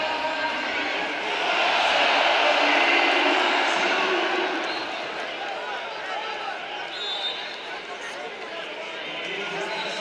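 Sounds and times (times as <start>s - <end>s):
arena crowd cheering: 0.0s - 10.0s.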